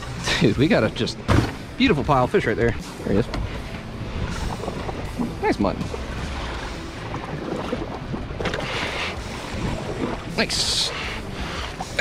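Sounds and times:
wind and sea rumble: 0.0 - 12.0.

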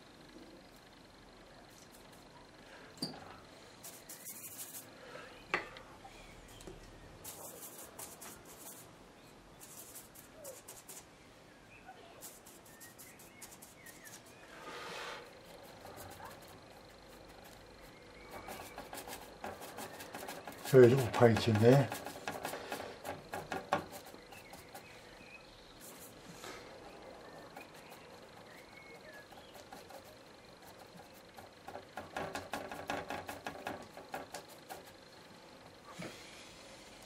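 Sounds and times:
bristle brush dabbing paint: 3.8 - 4.9, 6.5 - 11.2, 12.0 - 36.2.

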